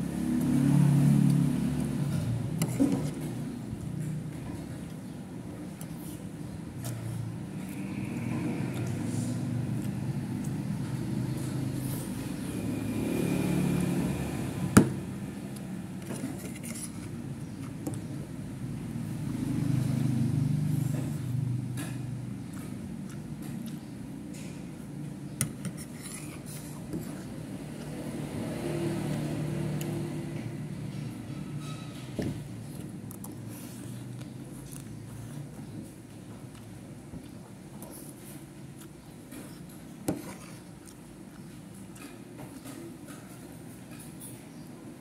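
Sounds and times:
vehicle engine passing: 0:00.0 - 0:03.9, 0:07.4 - 0:16.8, 0:18.4 - 0:22.2, 0:27.2 - 0:32.0.

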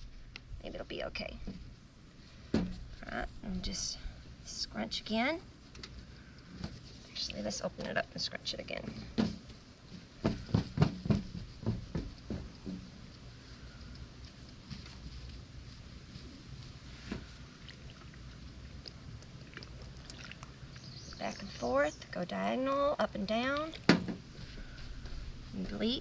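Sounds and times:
fabric rustling and rubbing: 0:09.3 - 0:17.7, 0:24.2 - 0:26.0.

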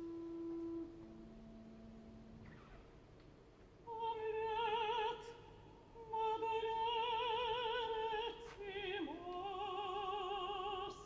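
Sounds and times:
soft orchestral held notes: 0:00.0 - 0:03.0.

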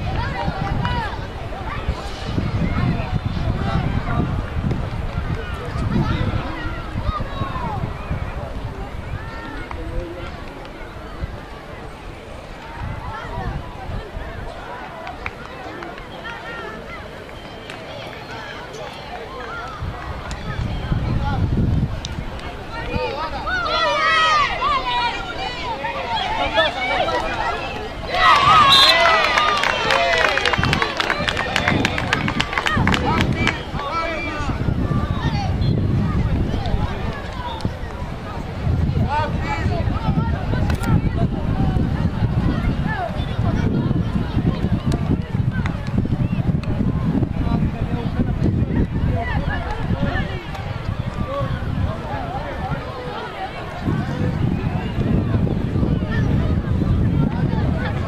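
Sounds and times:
wind rumbling on microphone: 0:00.0 - 0:17.1, 0:17.8 - 0:58.0
players and spectators shouting: 0:00.0 - 0:21.6, 0:22.2 - 0:58.0
players calling out: 0:22.2 - 0:38.6.

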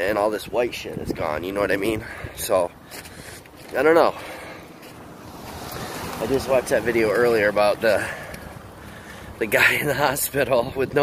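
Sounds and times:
wind rushing over microphone: 0:00.4 - 0:02.6.

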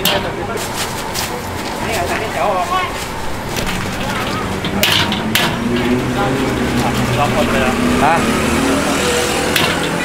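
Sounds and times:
voices: 0:00.0 - 0:10.0
vehicle engine running: 0:01.4 - 0:10.0
sharp metal knock: 0:09.5 - 0:10.0.

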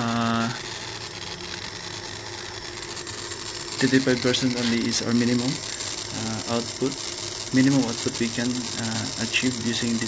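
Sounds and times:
faint hum: 0:00.0 - 0:10.0
speech: 0:03.8 - 0:05.6, 0:06.2 - 0:10.0.

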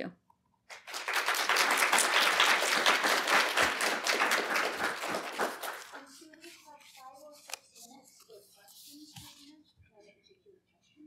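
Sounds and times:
audience applauding: 0:00.7 - 0:06.1.

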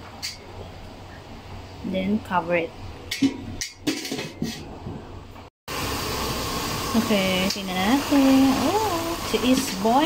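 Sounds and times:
broth boiling hiss: 0:05.7 - 0:10.0.

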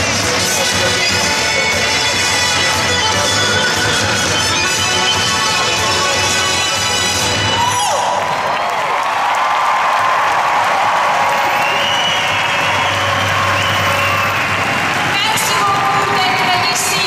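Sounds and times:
crowd cheering and applauding: 0:00.0 - 0:17.0
crowd whistles: 0:10.0 - 0:15.2.

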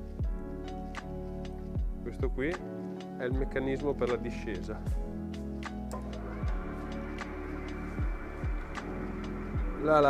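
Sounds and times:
deep sliding bass kicks: 0:06.0 - 0:10.0
sustained synth tones: 0:06.2 - 0:10.0.

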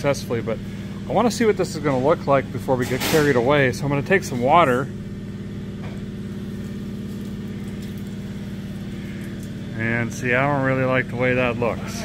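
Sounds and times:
low pulsing mechanical hum: 0:00.0 - 0:12.0.

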